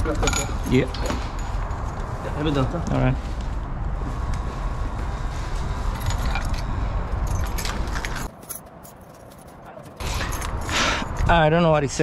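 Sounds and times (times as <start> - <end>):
small metal objects jangling: 5.9 - 11.2.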